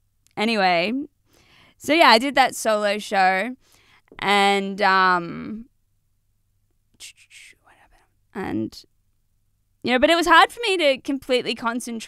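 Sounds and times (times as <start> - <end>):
woman breathing close to microphone: 1.2 - 1.8, 3.6 - 4.2.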